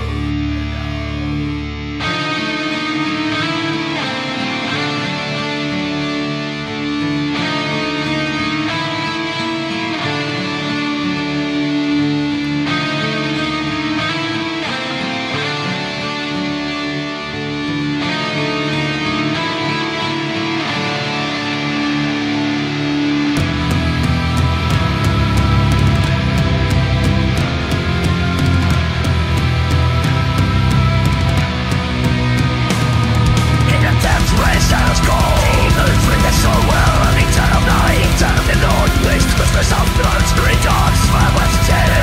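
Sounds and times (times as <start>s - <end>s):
distorted electric guitars: 0.0s - 42.0s
symphonic black metal instrumental: 0.0s - 42.0s.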